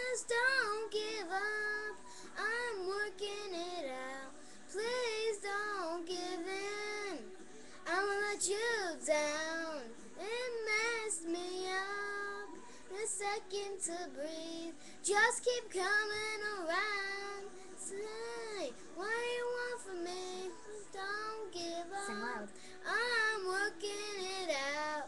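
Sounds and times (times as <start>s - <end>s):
girl singing pop song: 0.0s - 25.0s.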